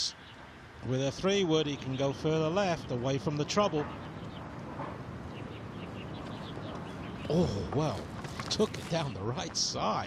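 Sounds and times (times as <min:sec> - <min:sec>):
bird chirping: 0:00.0 - 0:09.2.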